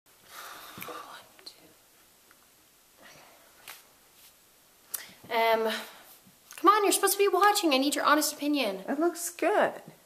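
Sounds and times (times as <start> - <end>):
quiet breathy sounds: 0.1 - 2.1, 2.9 - 6.4
faint whispering: 0.5 - 1.8, 3.0 - 3.6.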